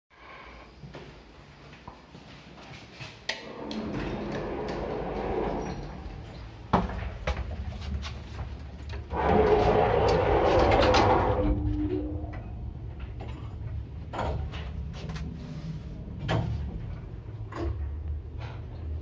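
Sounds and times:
lift doors rumbling on tracks: 3.4s - 7.2s, 8.6s - 19.0s.

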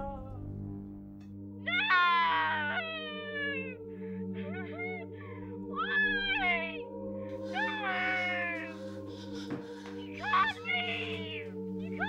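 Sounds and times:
low drone: 0.0s - 12.0s
wailing cries: 1.6s - 12.0s.

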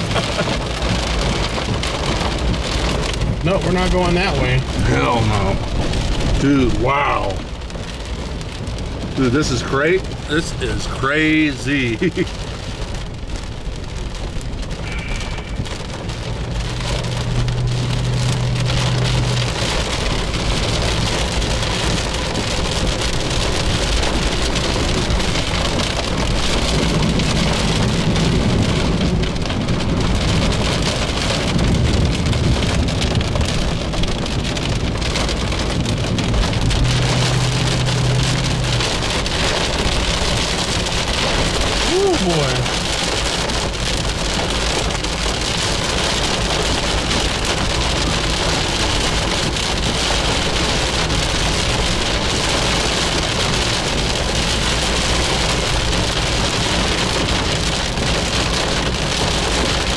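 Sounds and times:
heavy rain on car roof: 0.0s - 59.9s.

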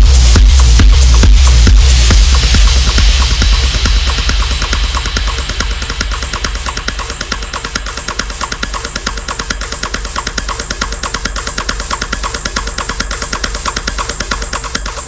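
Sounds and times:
deep bass: 0.0s - 15.0s
fast clicking percussion: 0.0s - 15.0s
techno music: 0.0s - 15.0s.

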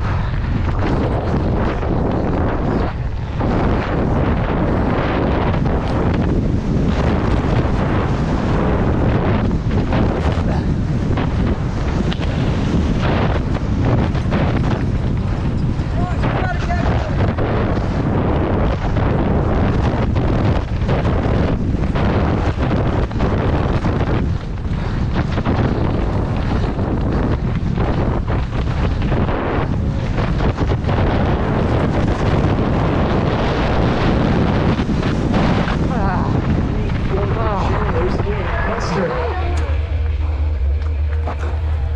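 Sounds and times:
bike rattling and knocking: 0.0s - 37.6s
tyres on gravel trail: 0.0s - 41.9s
wind buffeting microphone: 0.0s - 41.9s.

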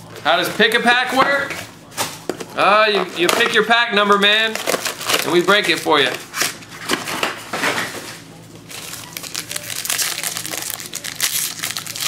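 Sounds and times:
foil wrappers crinkling: 0.4s - 12.0s.

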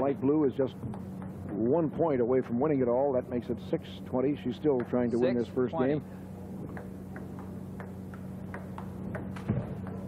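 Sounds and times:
steady low hum: 0.0s - 10.0s
ping pong ball clicking: 6.7s - 10.0s.

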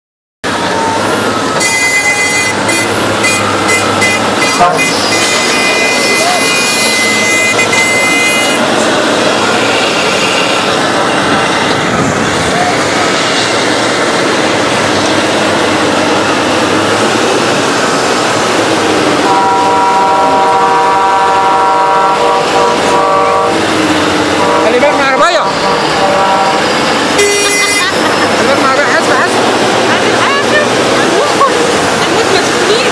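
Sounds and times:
heavy machinery running: 0.4s - 32.9s
high steady tone: 0.7s - 18.1s, 18.8s - 31.2s
vehicle horn: 1.6s - 8.8s, 9.6s - 10.7s, 19.2s - 23.6s, 24.4s - 25.0s, 25.6s - 28.0s.

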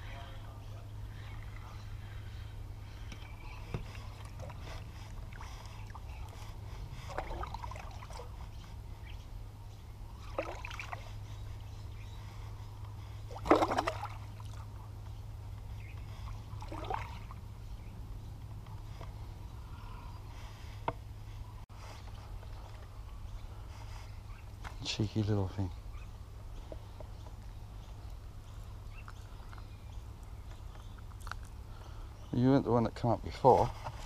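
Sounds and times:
steady low hum: 0.0s - 34.0s
light splashes on water: 13.3s - 14.7s, 16.6s - 17.4s.

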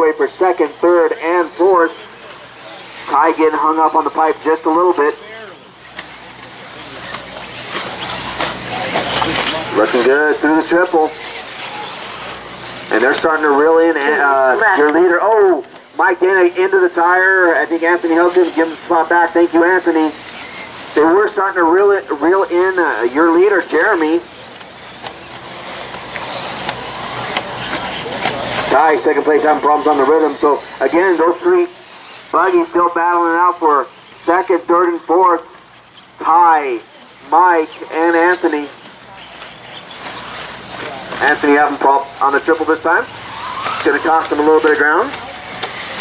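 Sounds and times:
electric toy cars hissing on dirt: 0.0s - 15.2s, 16.0s - 35.3s, 35.9s - 46.0s
electric motor whine: 18.0s - 34.2s, 36.6s - 46.0s.

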